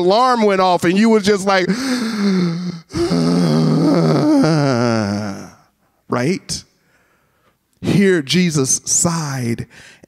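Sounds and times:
man groaning breathily: 0:01.7 - 0:05.7.

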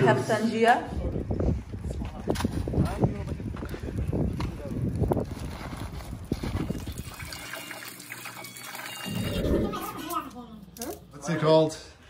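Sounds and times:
low rumble: 0:09.1 - 0:10.2.

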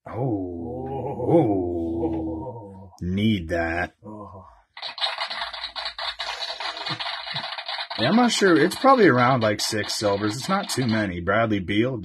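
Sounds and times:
trading cards rustling: 0:04.8 - 0:11.1.

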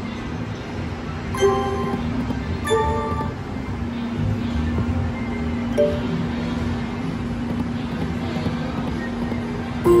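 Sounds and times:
steady hum: 0:00.0 - 0:10.0
slot machine electronic music: 0:01.3 - 0:03.5, 0:05.8 - 0:06.1.

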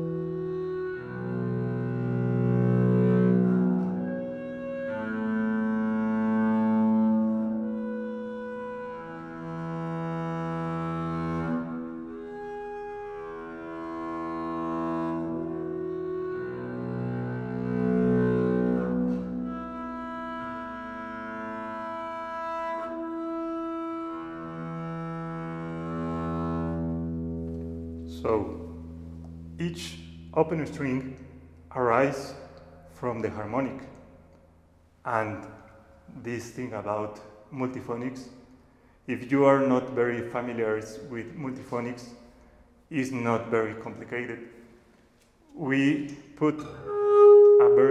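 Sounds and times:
bowed double bass: 0:00.0 - 0:38.4, 0:45.4 - 0:47.9.

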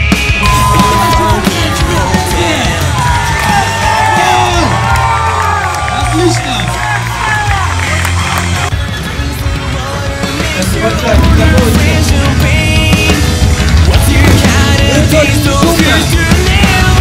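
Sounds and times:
crowd cheering and shouting: 0:00.0 - 0:17.0
loud rock music with heavy bass: 0:00.0 - 0:17.0.

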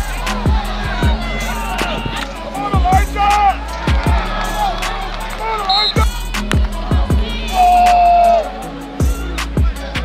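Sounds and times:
music with heavy bass: 0:00.0 - 0:10.0
person singing: 0:06.0 - 0:10.0.

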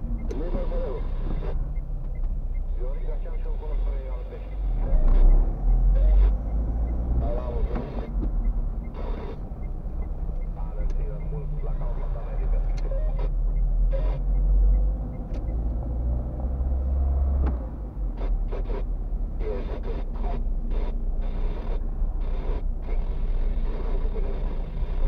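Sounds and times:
car engine and tyres rumbling: 0:00.0 - 0:25.0.

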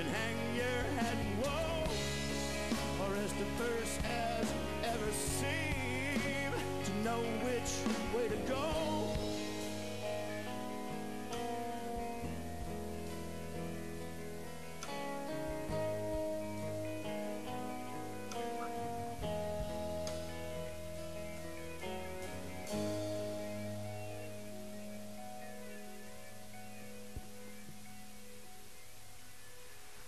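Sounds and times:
acoustic guitar: 0:00.0 - 0:28.1
electric guitar: 0:00.0 - 0:30.0.

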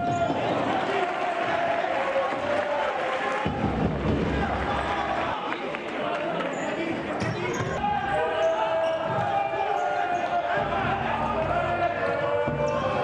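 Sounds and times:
players calling out: 0:00.0 - 0:13.0
ball kicked and bouncing on court: 0:07.2 - 0:07.8.

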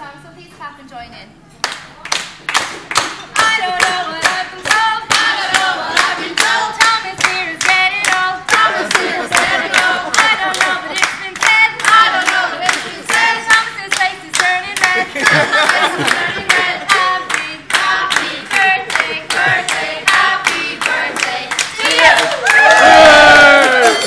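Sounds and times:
people clapping in rhythm: 0:01.6 - 0:24.0
group singing a birthday song: 0:03.3 - 0:24.0.

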